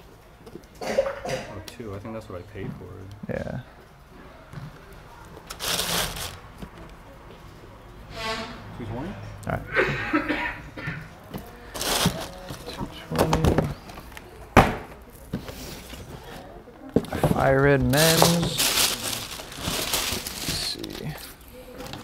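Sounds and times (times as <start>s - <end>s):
indistinct voices: 4.2s - 14.5s
tissue paper rustling: 5.5s - 6.4s, 11.7s - 12.8s, 17.8s - 21.4s.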